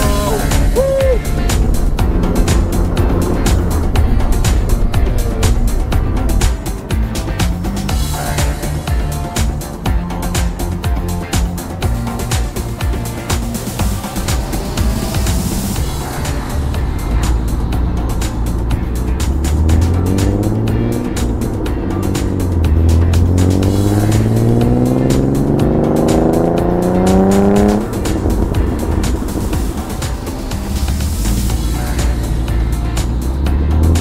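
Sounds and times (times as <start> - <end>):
background music: 0.0 - 34.0
car engine accelerating: 0.0 - 34.0.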